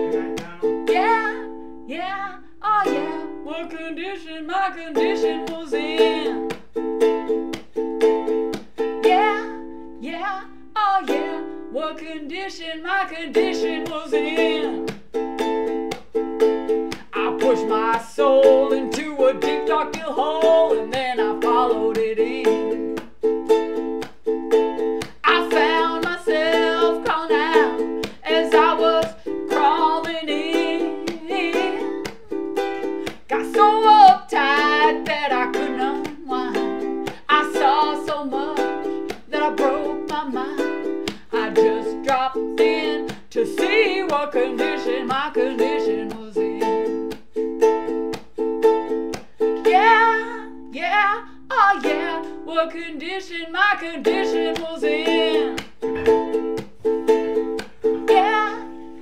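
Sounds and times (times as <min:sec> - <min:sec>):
woman singing: 0:00.0 - 0:06.7, 0:09.0 - 0:15.0, 0:16.9 - 0:23.0, 0:24.8 - 0:47.2, 0:49.6 - 0:59.0
ukulele strumming chords: 0:00.0 - 0:59.0.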